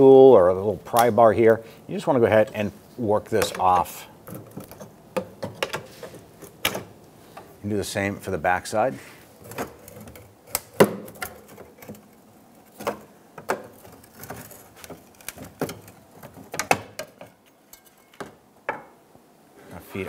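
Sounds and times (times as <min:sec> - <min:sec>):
hand tools clicking and tapping: 0:03.4 - 0:07.5, 0:12.7 - 0:18.9.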